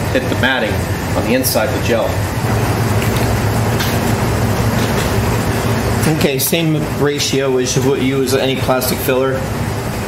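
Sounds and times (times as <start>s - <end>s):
machine hum with rushing air: 0.0s - 10.0s.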